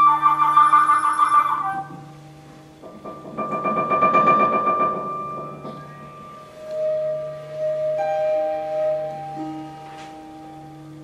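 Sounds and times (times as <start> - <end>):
soft pure held tone: 0.0 - 11.0
high ringing note: 4.9 - 11.0.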